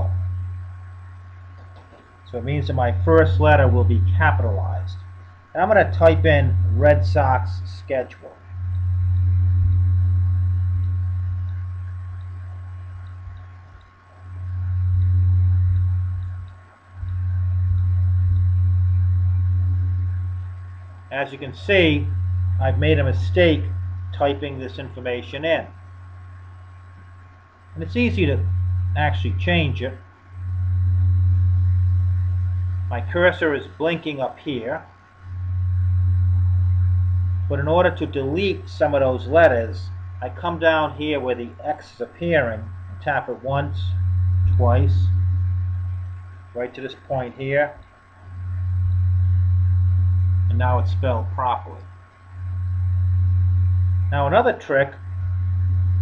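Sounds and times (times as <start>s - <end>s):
faint high whine: 0.0s - 56.0s
loud low hum: 0.0s - 56.0s.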